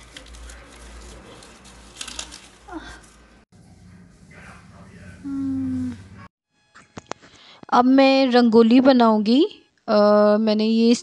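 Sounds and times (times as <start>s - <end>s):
leaf garland rustling: 0.0s - 3.4s.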